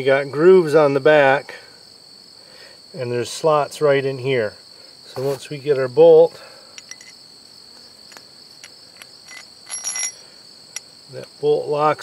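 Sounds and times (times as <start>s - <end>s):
crickets chirping: 0.0s - 12.0s
metal bolt and washers clinking: 6.8s - 7.2s, 8.6s - 11.3s.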